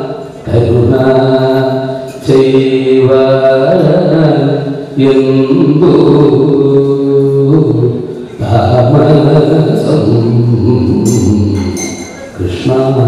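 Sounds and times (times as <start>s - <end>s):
man chanting verses: 0.0s - 13.0s.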